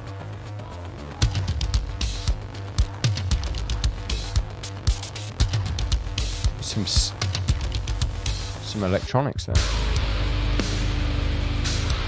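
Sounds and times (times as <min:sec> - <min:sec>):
drum strikes: 0:01.2 - 0:08.7, 0:09.6 - 0:12.0
metal band playing: 0:01.2 - 0:12.0
held low bass: 0:09.6 - 0:12.0.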